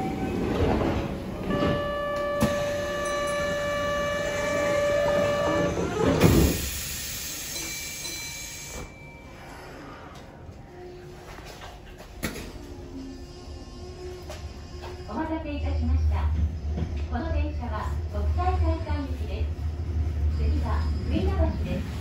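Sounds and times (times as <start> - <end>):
train rumbling: 0.0 - 22.0.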